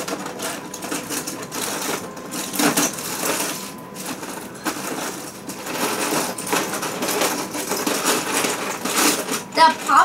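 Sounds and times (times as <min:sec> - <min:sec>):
plastic pieces rattling and clicking: 0:00.0 - 0:10.0.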